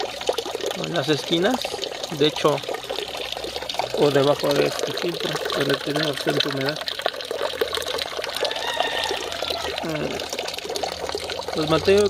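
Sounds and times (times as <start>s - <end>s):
water pouring into a tank: 0.0s - 12.0s.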